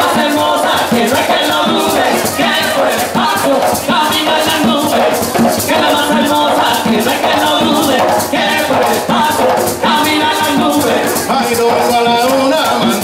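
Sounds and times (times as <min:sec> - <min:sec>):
barrel drums: 0:00.0 - 0:13.0
group singing: 0:00.0 - 0:13.0
maraca shaking: 0:00.0 - 0:13.0.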